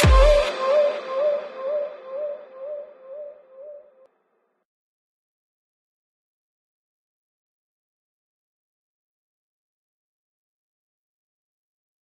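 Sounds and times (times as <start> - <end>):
low pulsing synthesizer tone: 0.0 - 3.8.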